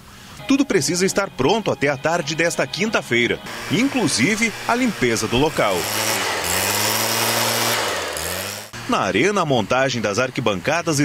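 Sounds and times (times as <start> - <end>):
leaf blower engine running: 2.0 - 11.0.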